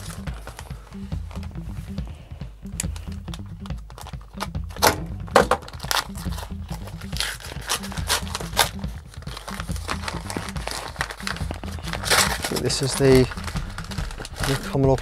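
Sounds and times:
background music: 0.0 - 15.0
paper envelope crinkling and tearing: 5.5 - 14.8.

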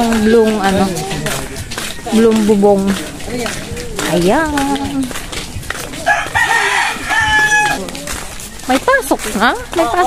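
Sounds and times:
rooster crowing: 6.0 - 7.9.

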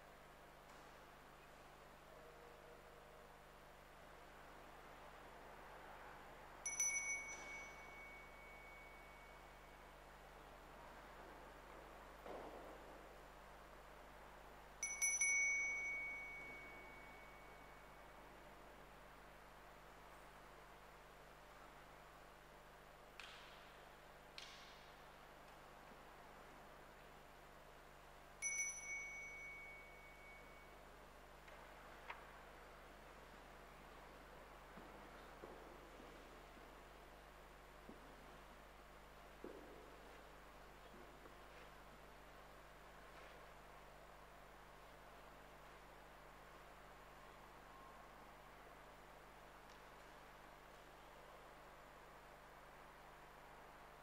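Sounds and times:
altar bell ringing: 6.6 - 9.8, 14.8 - 18.0, 28.4 - 30.8.

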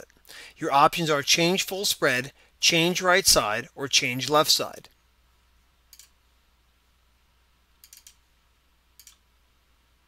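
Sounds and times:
computer mouse click: 5.9 - 6.2, 7.8 - 8.2, 9.0 - 9.2.

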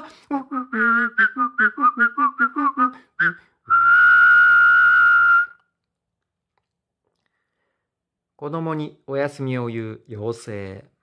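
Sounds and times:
whistled note: 0.3 - 5.8.

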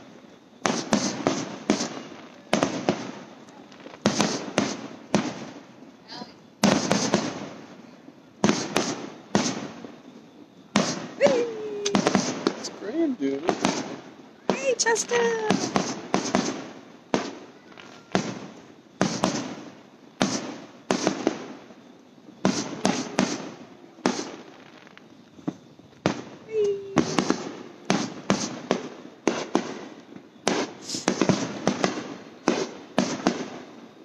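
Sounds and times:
fireworks bangs: 0.0 - 34.0.

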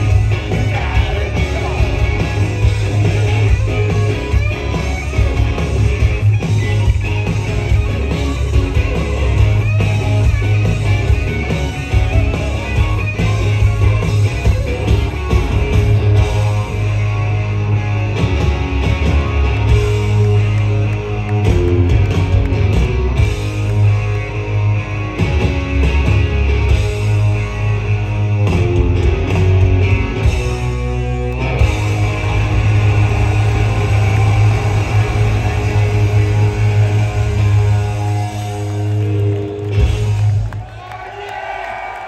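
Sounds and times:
electric guitar: 0.0 - 40.6
steady bass: 0.0 - 40.6.

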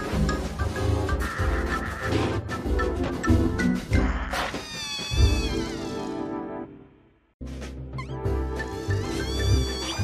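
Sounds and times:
balloon squealing: 4.0 - 6.3, 8.8 - 10.0.

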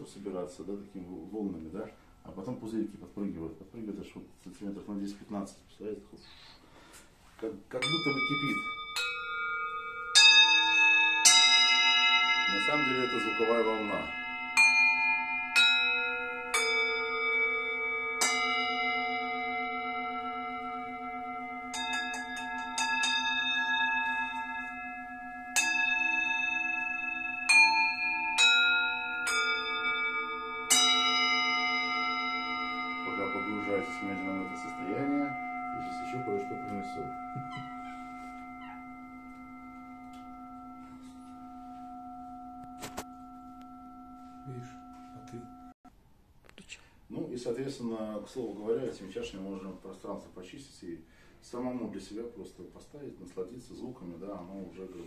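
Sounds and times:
singing bowls ringing: 7.7 - 45.8
wooden mallet striking bowls: 7.8 - 45.8.

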